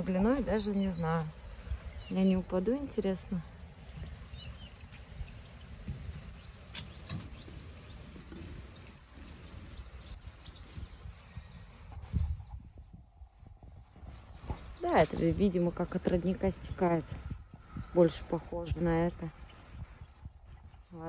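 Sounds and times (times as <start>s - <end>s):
bird chirping: 0.0s - 21.0s
footsteps on metal grating: 3.8s - 9.0s.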